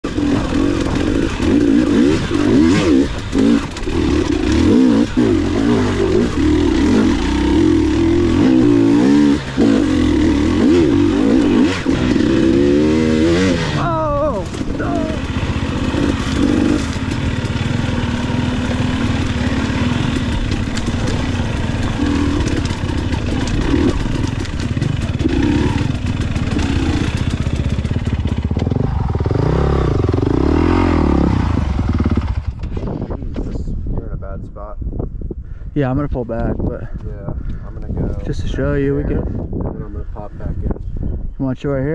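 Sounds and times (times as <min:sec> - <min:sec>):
motorcycle engine revving: 0:00.0 - 0:33.4.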